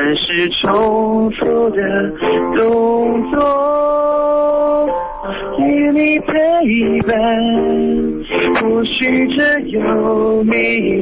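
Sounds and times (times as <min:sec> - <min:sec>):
man singing over telephone: 0:00.0 - 0:11.0
piano accompaniment: 0:00.0 - 0:11.0.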